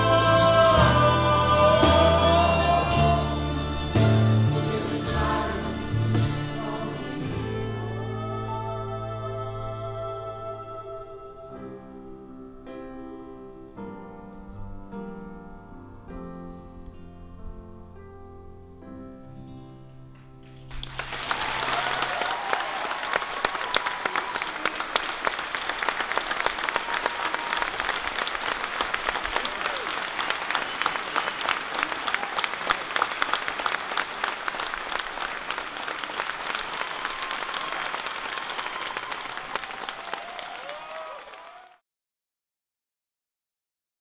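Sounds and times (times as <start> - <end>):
audience applause: 20.6 - 41.8.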